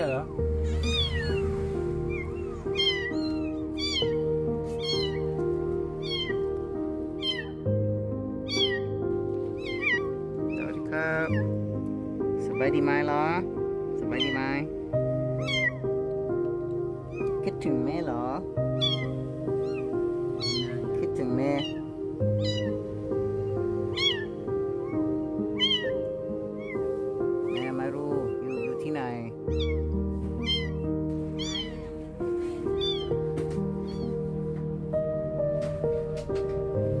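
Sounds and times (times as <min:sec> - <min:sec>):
soft background music: 0:00.0 - 0:37.0
kitten mewing: 0:00.1 - 0:05.4, 0:06.0 - 0:06.5, 0:07.2 - 0:07.6, 0:08.4 - 0:08.9, 0:09.5 - 0:11.6, 0:14.1 - 0:14.4, 0:15.4 - 0:15.9, 0:17.1 - 0:17.4, 0:18.8 - 0:22.8, 0:23.8 - 0:28.8, 0:29.4 - 0:29.8, 0:30.4 - 0:32.0, 0:32.7 - 0:34.2.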